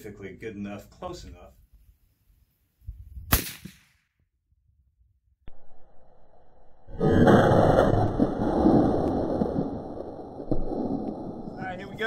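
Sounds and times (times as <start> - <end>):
rifle shot: 3.3 - 4.1.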